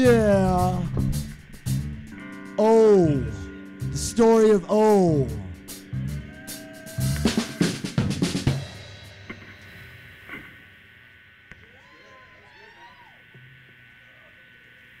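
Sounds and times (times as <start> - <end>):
drum and cymbal hits: 0.0 - 10.5
low room noise: 0.0 - 15.0.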